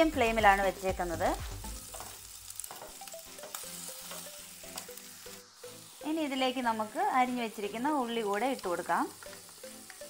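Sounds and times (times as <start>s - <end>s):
frying in oil sizzle: 0.0s - 10.0s
spatula stirring and scraping pan: 1.4s - 4.9s.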